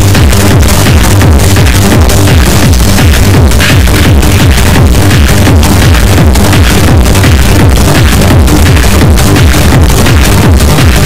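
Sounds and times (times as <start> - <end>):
hardcore techno music: 0.0 - 11.0
pounding kick drum: 0.0 - 11.0.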